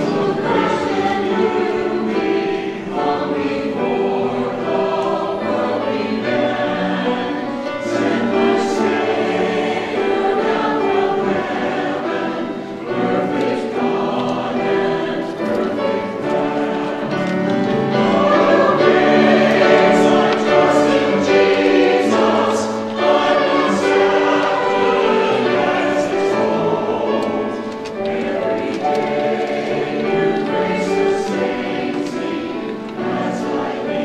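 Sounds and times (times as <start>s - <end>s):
mixed choir singing: 0.0s - 34.0s.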